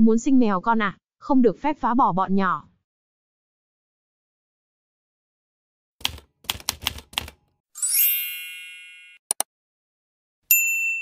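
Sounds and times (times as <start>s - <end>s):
typewriter keystrokes: 6.0s - 7.4s.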